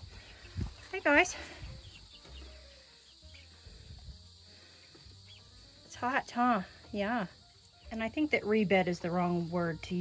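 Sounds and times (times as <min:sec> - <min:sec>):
chicks peeping: 0:00.0 - 0:10.0
high drone of insects: 0:00.0 - 0:10.0.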